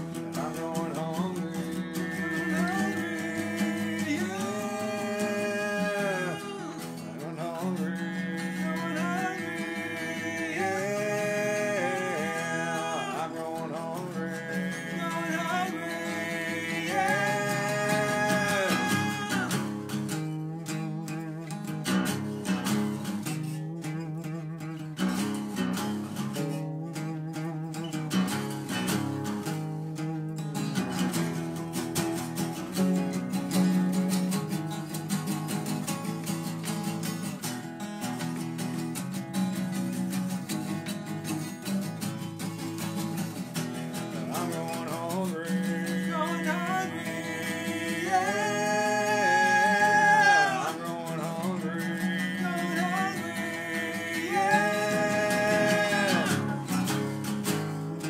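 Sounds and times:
person singing: 0.0s - 21.8s, 44.0s - 58.0s
acoustic guitars strumming: 0.0s - 58.0s.

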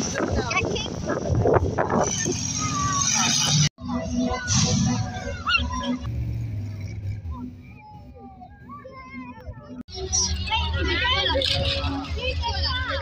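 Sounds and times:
crowd noise: 0.0s - 13.0s
monster truck engines running: 0.0s - 13.0s
voices: 0.0s - 13.0s.

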